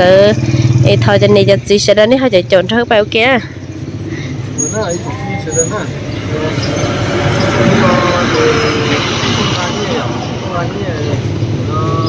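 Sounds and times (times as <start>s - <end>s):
road vehicle passing: 0.0s - 12.0s.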